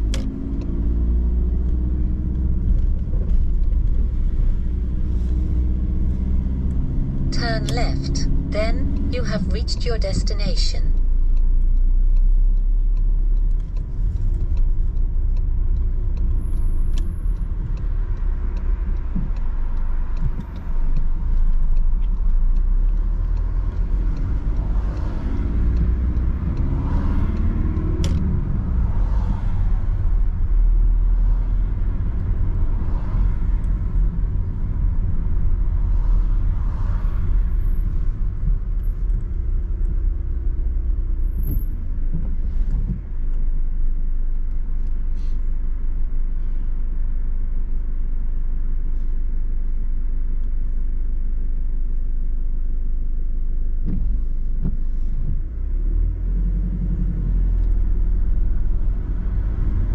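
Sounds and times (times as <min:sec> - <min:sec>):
car engine and road rumble: 0:00.0 - 0:59.9.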